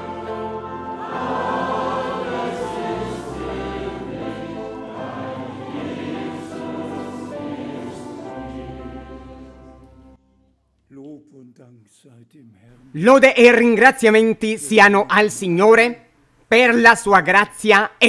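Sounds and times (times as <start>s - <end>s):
choir singing a hymn: 0.0s - 10.2s.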